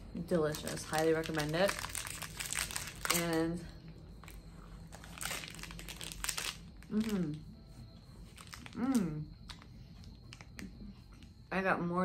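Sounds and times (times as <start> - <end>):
plastic wrapper crinkling: 0.2 - 7.4, 8.3 - 9.6.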